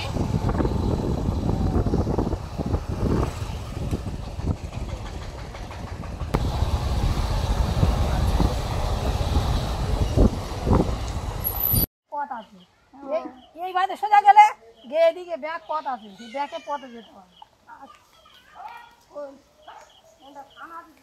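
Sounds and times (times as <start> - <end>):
wind buffeting microphone: 0.0 - 11.9
road and vehicle noise: 0.0 - 12.7.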